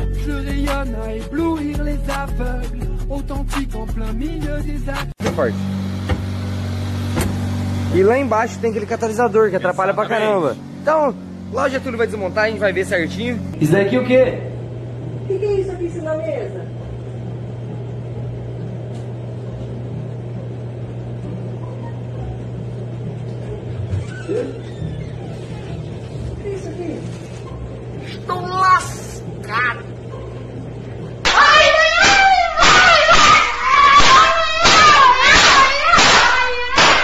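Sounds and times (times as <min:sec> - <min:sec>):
music with a beat: 0:00.0 - 0:05.2
low machinery hum: 0:05.2 - 0:36.4.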